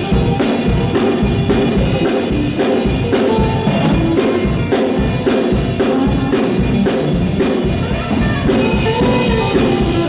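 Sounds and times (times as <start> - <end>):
bass guitar: 0.0 - 10.0
drum kit beat: 0.0 - 10.0
electric guitar: 0.0 - 10.0
piano: 0.0 - 10.0.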